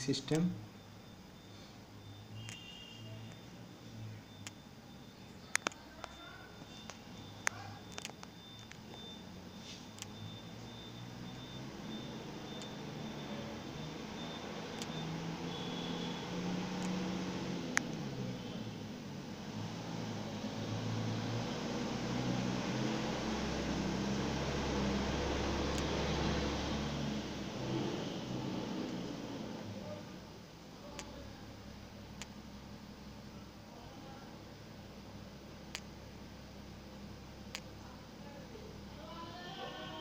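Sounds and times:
mechanical hum: 0:00.0 - 0:40.0.

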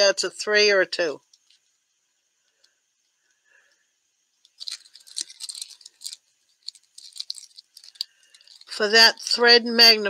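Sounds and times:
metal gauges rattling and clicking: 0:01.3 - 0:01.8, 0:04.4 - 0:09.4.

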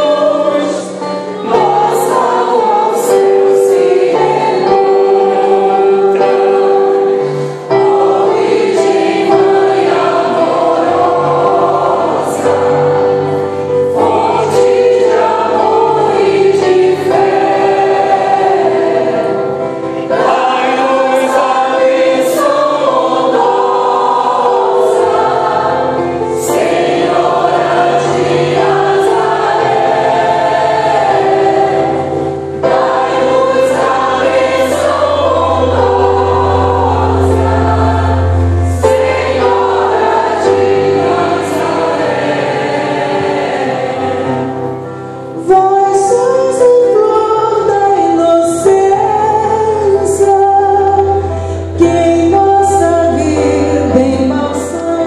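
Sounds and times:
choir singing a hymn: 0:00.0 - 0:55.0
digital piano: 0:00.0 - 0:55.0.

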